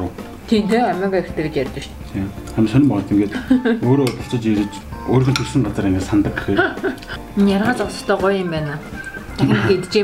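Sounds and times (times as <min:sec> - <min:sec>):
cutlery clinking on ceramic plates: 0:03.8 - 0:06.6.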